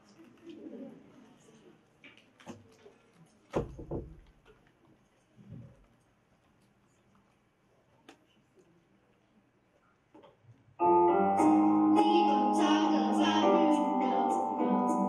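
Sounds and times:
piano backing track: 10.8 - 15.0.

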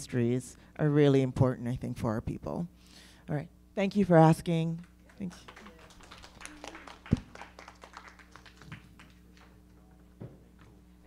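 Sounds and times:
audience clapping: 4.9 - 9.8.

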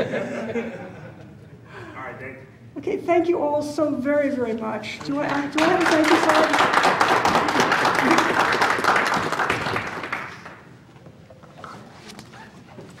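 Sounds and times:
audience applauding: 5.0 - 10.8.

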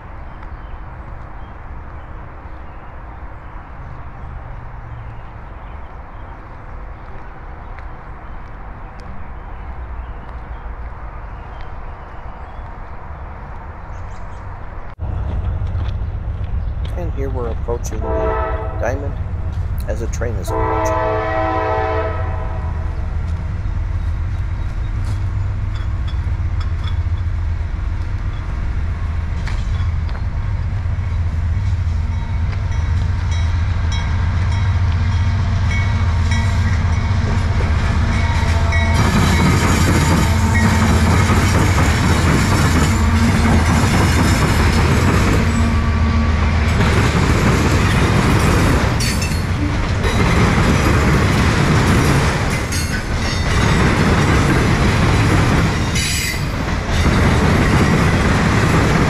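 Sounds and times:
train wheels on rails: 13.4 - 18.2, 19.2 - 59.0
diesel locomotive rumble: 14.9 - 59.0
train horn blast: 17.9 - 19.2, 20.4 - 22.9, 36.2 - 41.4, 42.8 - 43.7, 45.4 - 46.8
wheels clacking over rail joints: 31.8 - 59.0.

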